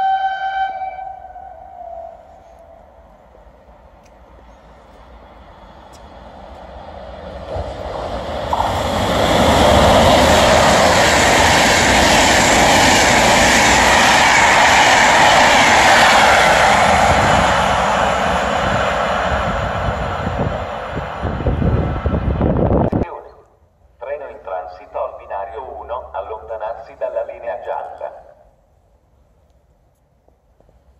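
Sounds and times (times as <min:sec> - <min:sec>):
train wheels on rail rushing: 0:02.3 - 0:23.0.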